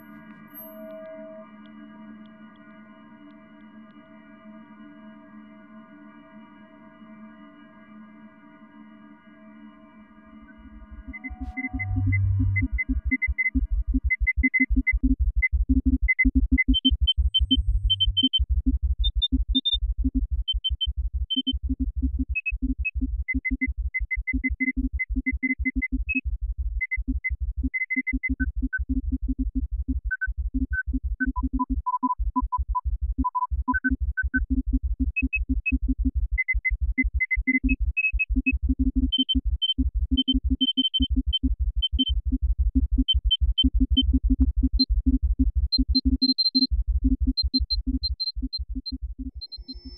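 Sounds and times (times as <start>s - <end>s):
high sonar-like beeps: 0.0s - 3.6s, 10.0s - 14.9s, 45.8s - 49.9s
low hum: 9.8s - 14.2s
low electronic pulses: 10.5s - 13.1s.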